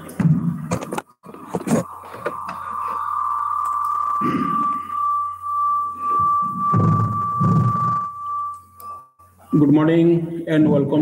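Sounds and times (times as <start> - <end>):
muffled low sounds: 0.3 - 11.0
high-pitched feedback whistle: 1.7 - 10.5.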